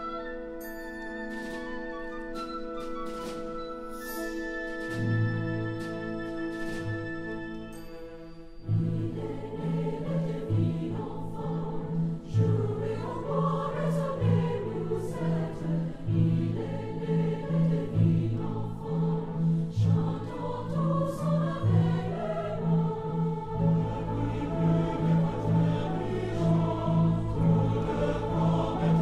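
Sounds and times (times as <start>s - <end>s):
choir singing a carol: 0.0s - 29.0s.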